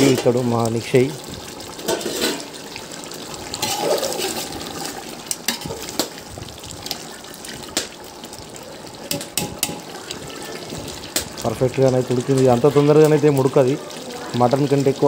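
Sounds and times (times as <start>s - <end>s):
pot boiling with bubbling hiss: 0.0s - 15.0s
metal ladle stirring: 1.8s - 2.6s, 3.6s - 6.1s.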